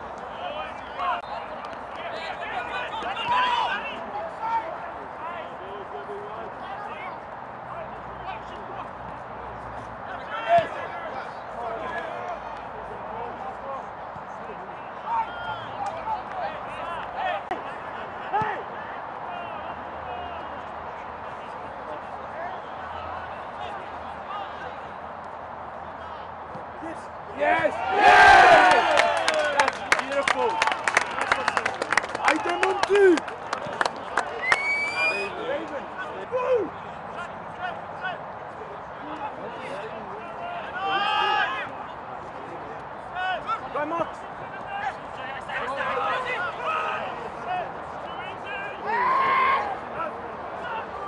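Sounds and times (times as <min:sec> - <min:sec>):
open-air background noise: 0:00.0 - 0:51.0
players shouting calls: 0:00.1 - 0:08.8, 0:10.1 - 0:13.0, 0:14.5 - 0:20.7, 0:25.8 - 0:42.0, 0:43.0 - 0:51.0.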